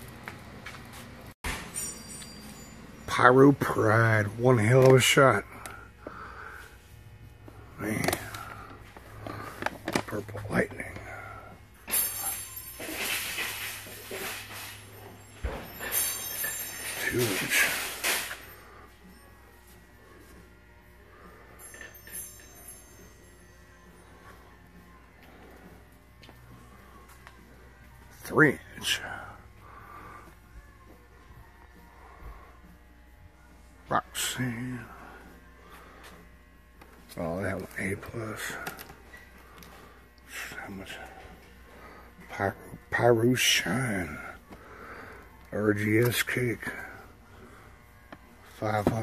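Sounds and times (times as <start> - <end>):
steady low hum: 0.0 - 49.0
wire shopping cart rattling: 11.9 - 18.5.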